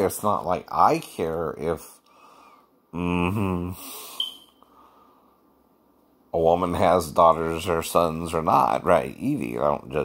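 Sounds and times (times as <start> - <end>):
man murmuring: 2.9 - 4.1
short high-pitched beep: 4.2 - 4.6.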